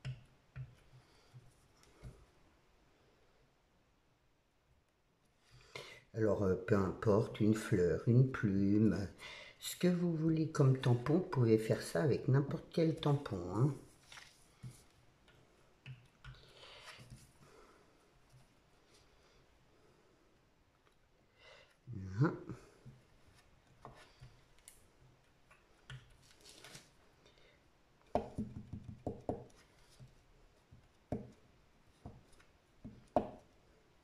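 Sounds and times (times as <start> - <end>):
paper sliding and rustling: 13.9 - 14.9, 26.2 - 27.0.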